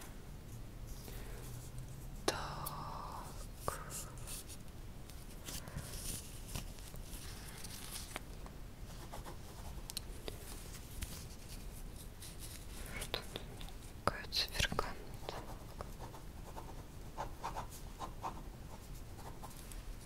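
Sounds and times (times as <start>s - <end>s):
quiet whispering: 0.8s - 4.6s, 12.5s - 16.1s.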